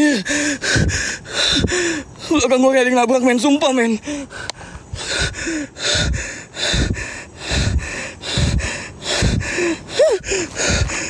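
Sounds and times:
man breathing heavily: 0.0 - 2.4, 3.9 - 11.0.

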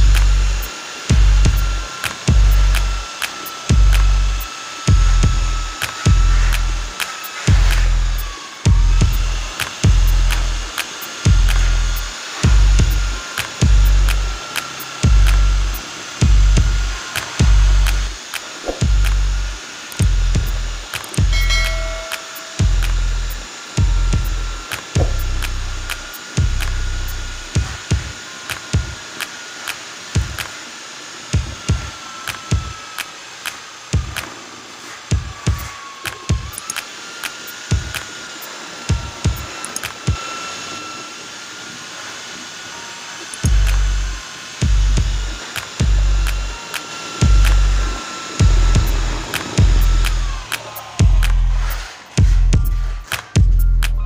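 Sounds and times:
music with heavy bass beat: 0.0 - 29.0, 34.0 - 34.4, 35.1 - 36.7, 38.9 - 40.2, 43.4 - 54.0
electric drill mixing cement: 0.0 - 54.0.

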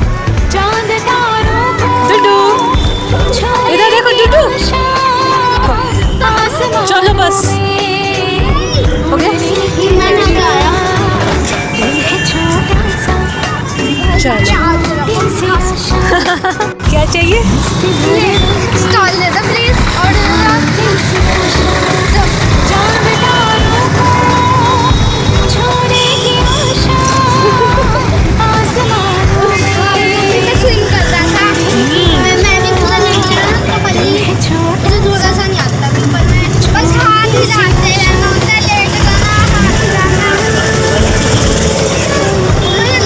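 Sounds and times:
children talking: 0.0 - 43.0
faint voices: 0.0 - 43.0
music: 0.0 - 43.0
vehicle engine and road noise: 0.0 - 43.0.

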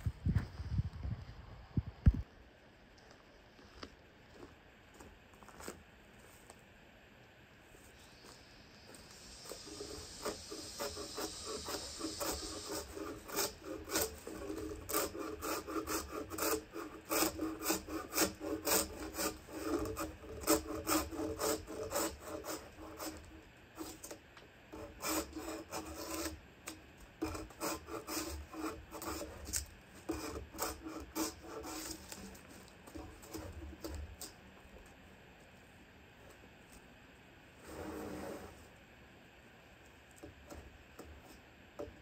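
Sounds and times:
drawknife scraping bark off log: 9.3 - 24.2, 24.8 - 26.4, 27.2 - 34.3.

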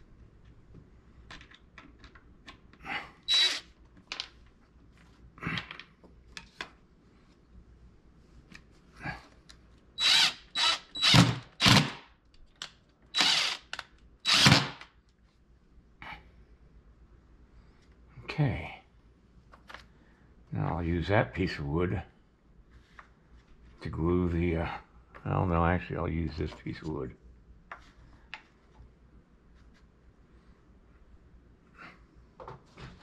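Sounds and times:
cordless drill driving screws into wood: 3.3 - 3.7, 10.0 - 12.0, 13.2 - 14.9.

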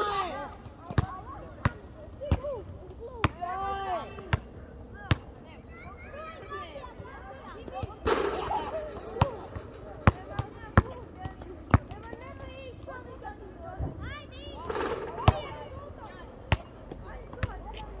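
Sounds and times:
voices calling: 6.8 - 18.0
basketball bouncing: 8.1 - 12.5, 14.7 - 15.6.

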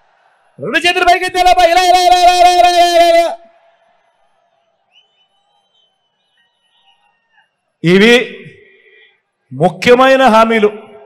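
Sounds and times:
man calling through microphone: 0.6 - 3.5, 7.8 - 8.8, 9.5 - 11.0.

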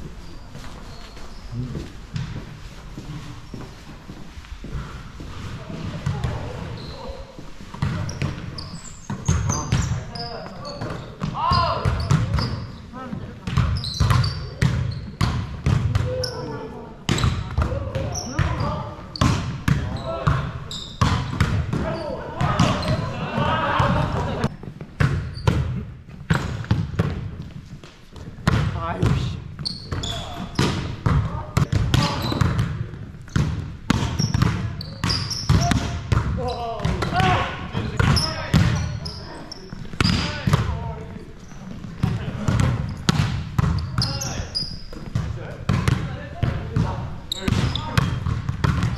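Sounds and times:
volleyballs hit and bouncing: 2.1 - 2.5, 5.6 - 6.8, 7.6 - 48.9.

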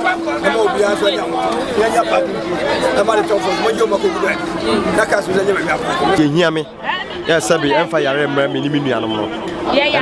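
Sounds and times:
voices chattering: 0.0 - 10.0.

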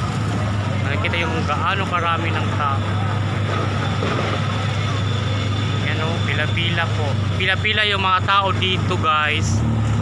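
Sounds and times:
street noise: 0.0 - 10.0
vehicle engine hum: 0.0 - 10.0.

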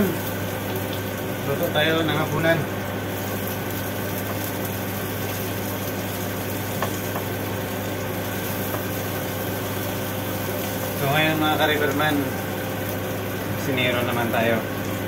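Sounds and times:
low machinery hum: 0.0 - 15.0.

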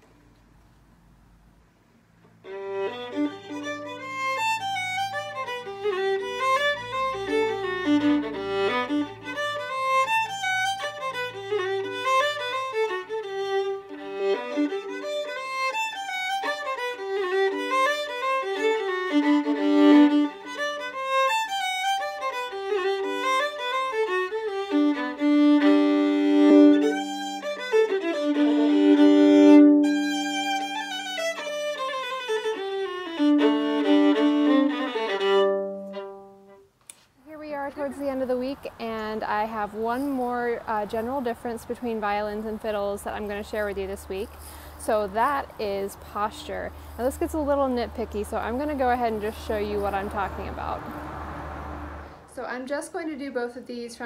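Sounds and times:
solo fiddle tune: 2.3 - 37.0, 37.6 - 52.1.

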